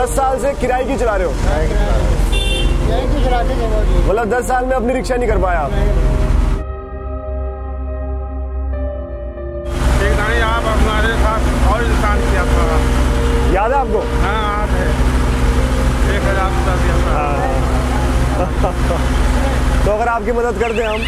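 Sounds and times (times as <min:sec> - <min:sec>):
man talking: 0:00.0 - 0:06.1, 0:09.9 - 0:12.9, 0:13.5 - 0:15.0, 0:16.0 - 0:21.0
street traffic rumble: 0:00.0 - 0:06.6, 0:09.7 - 0:21.0.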